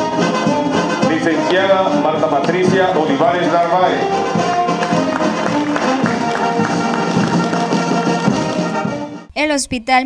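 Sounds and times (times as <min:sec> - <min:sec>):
brass band music: 0:00.0 - 0:09.3.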